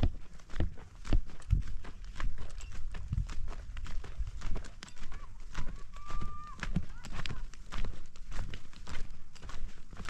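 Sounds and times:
footsteps crunching on stony dirt: 0.0s - 10.0s.

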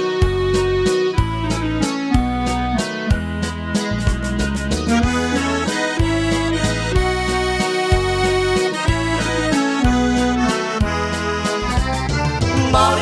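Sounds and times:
accordion folk music: 0.0s - 13.0s.

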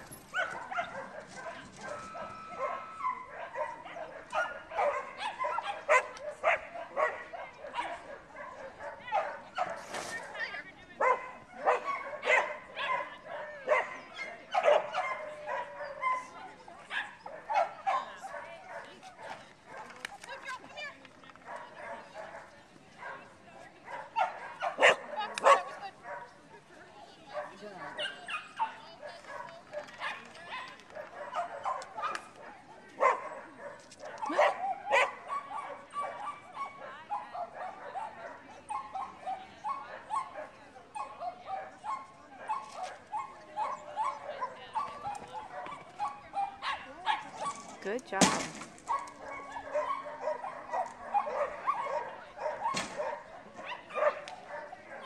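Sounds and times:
dog barking and yipping: 0.1s - 10.4s, 11.0s - 19.9s, 23.9s - 26.3s, 27.3s - 32.3s, 33.0s - 47.7s, 48.9s - 55.0s.

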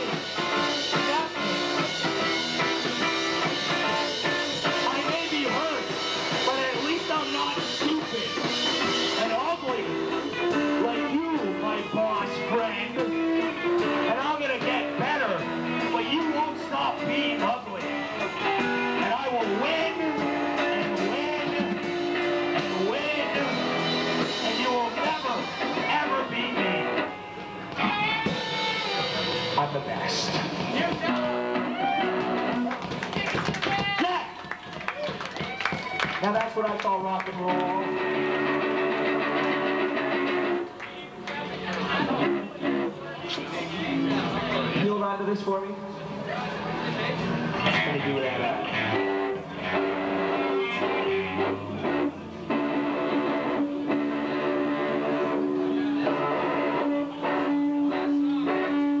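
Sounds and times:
electric guitar: 0.0s - 59.0s
live rock band playing: 0.0s - 59.0s.

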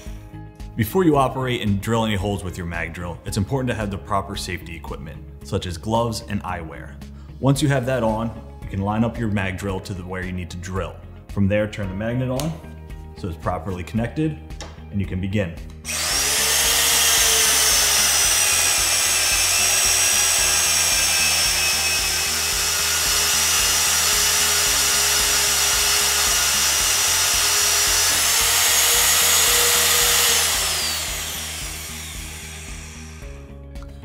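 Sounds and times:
cutter cutting through steel: 15.9s - 33.4s
magnetic drill press motor whining: 15.9s - 33.4s.

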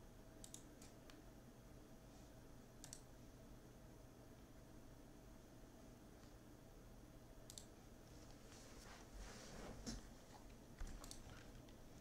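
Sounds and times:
faint computer clicks: 0.4s - 1.2s, 2.8s - 3.1s, 7.4s - 8.4s, 10.8s - 11.8s.

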